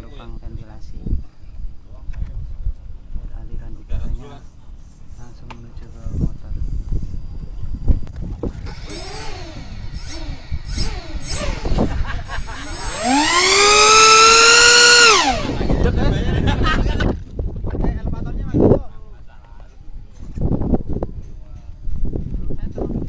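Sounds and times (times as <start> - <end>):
model plane motor whining: 8.5 - 16.0.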